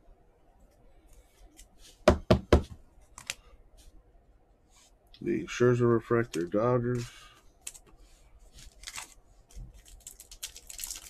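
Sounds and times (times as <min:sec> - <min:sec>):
cards knocked on a tabletop: 0:02.1 - 0:02.8
cards sliding and rustling: 0:06.2 - 0:09.8.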